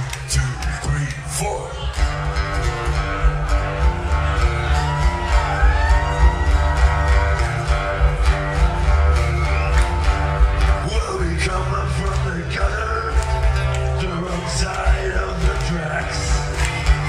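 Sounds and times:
acoustic guitars playing blues: 0:00.0 - 0:17.0
deep bass line: 0:00.0 - 0:17.0.

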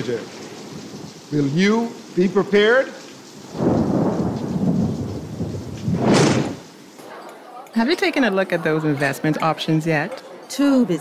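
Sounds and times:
thunder rumbling: 0:00.0 - 0:07.2
rain: 0:00.0 - 0:11.0
sharp thunder crack: 0:03.4 - 0:07.2.

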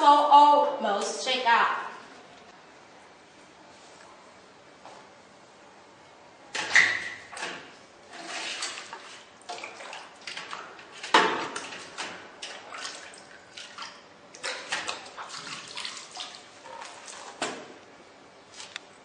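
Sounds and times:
water sloshing and splashing: 0:06.7 - 0:17.8.

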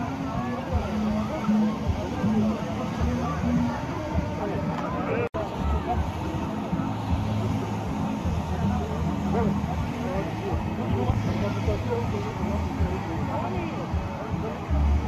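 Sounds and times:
car engine and road noise: 0:00.0 - 0:15.0
people talking: 0:00.0 - 0:15.0.

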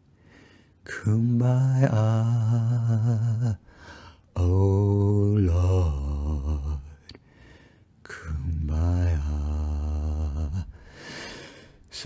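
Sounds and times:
man singing unaccompanied: 0:00.8 - 0:03.7, 0:04.3 - 0:07.1, 0:08.1 - 0:10.8.

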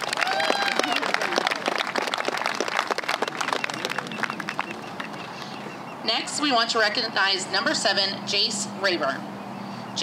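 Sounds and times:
crowd applauding: 0:00.0 - 0:05.6.

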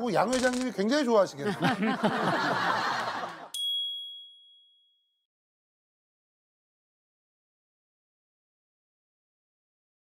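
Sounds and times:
studio voices and laughter: 0:01.2 - 0:03.5
bright electronic chime: 0:03.6 - 0:04.9.

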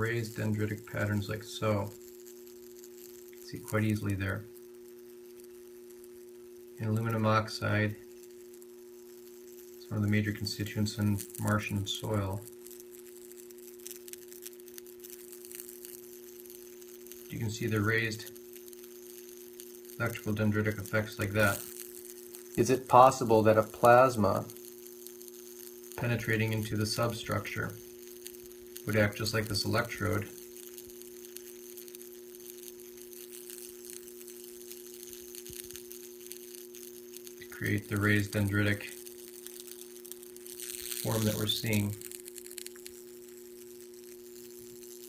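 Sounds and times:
faint crackling ticks: 0:00.0 - 0:45.0
low electrical hum: 0:00.0 - 0:45.0.

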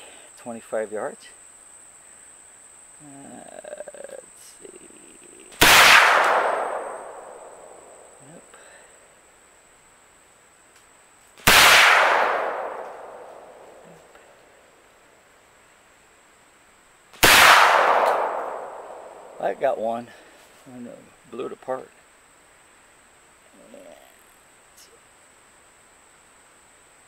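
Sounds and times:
rifle shots with echo: 0:05.6 - 0:08.1, 0:11.4 - 0:13.8, 0:17.2 - 0:19.6.

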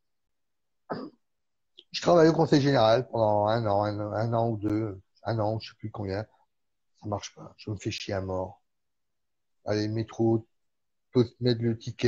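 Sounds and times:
man coughing: 0:00.9 - 0:01.2.

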